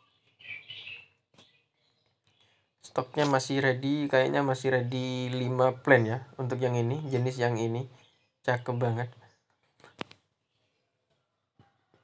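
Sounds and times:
man speaking: 2.8 - 9.2.

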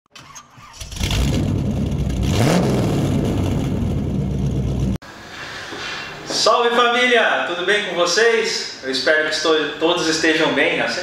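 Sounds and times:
car engine starting and revving: 0.2 - 5.0.

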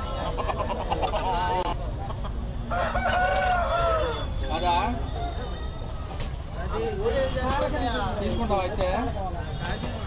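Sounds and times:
rooster crowing: 2.7 - 4.4.

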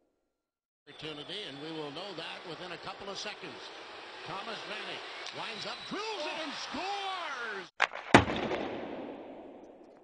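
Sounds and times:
sharp crack: 7.8 - 10.0.

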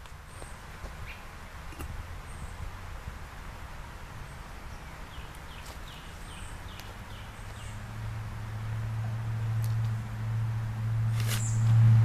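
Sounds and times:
birds chirping: 0.0 - 2.6, 4.2 - 7.9
steady low rumble: 6.2 - 12.0
footsteps in dry leaves: 11.1 - 11.9.

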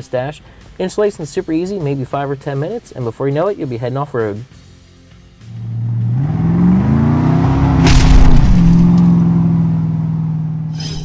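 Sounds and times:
low droning tone rising: 5.5 - 10.9
loud boom: 7.6 - 9.2.

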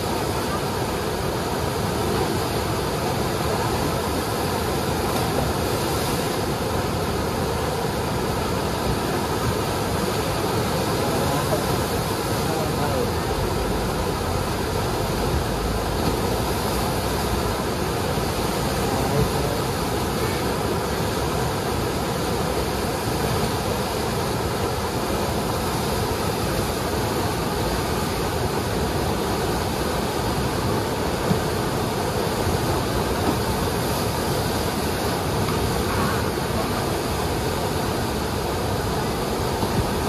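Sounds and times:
rushing whitewater: 0.0 - 40.0.

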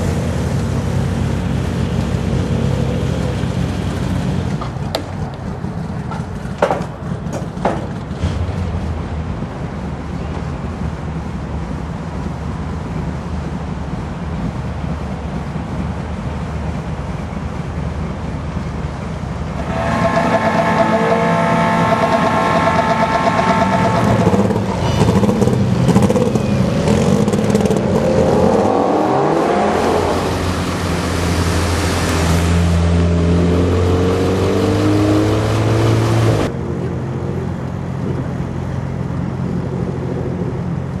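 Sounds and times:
car engines revving: 0.0 - 41.0
engine running steadily: 0.0 - 41.0.

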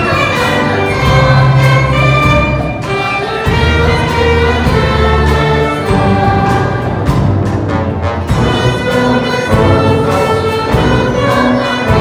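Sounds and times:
choir singing: 0.0 - 7.2, 8.4 - 12.0
orchestra strings playing: 0.0 - 12.0.

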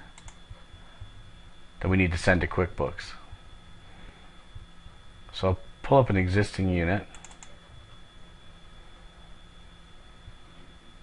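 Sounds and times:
faint high whine: 0.0 - 11.0
light computer clicks: 0.1 - 0.4, 7.1 - 7.6.

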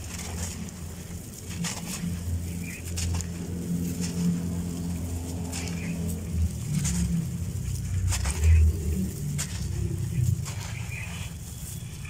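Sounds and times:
gritty sand crumbling through hands: 0.0 - 12.0
steady low drone: 0.0 - 12.0.

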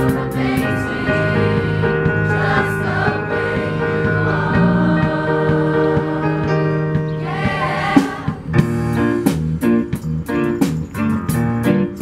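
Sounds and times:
choir singing in harmony: 0.0 - 8.6.

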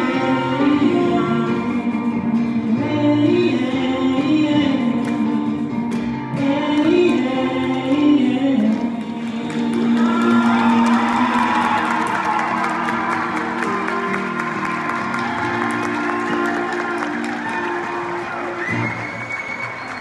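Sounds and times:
audience applauding and cheering: 8.8 - 20.0.

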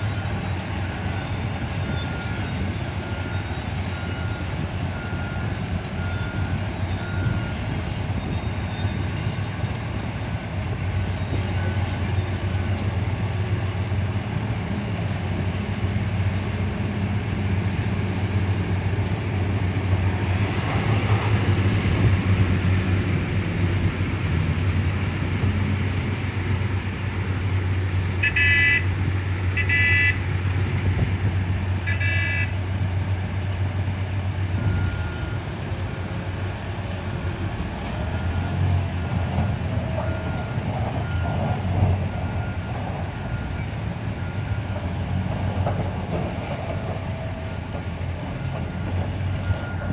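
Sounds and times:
reversing beeps: 0.0 - 9.6, 34.6 - 35.5, 38.1 - 39.2, 39.8 - 44.9, 48.4 - 49.9
truck horn toots: 28.2 - 28.9, 29.6 - 30.2, 31.8 - 32.6.

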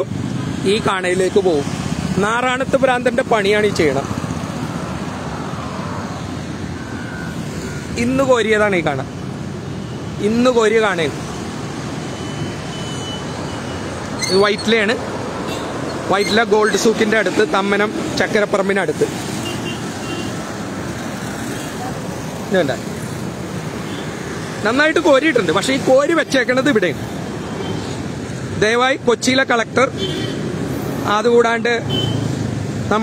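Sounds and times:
cars passing: 0.0 - 33.0
highway traffic noise: 0.0 - 33.0
motorbikes passing: 0.0 - 33.0.

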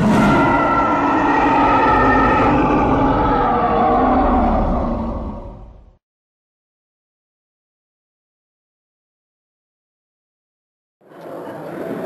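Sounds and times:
roar with held tones: 0.0 - 6.0.

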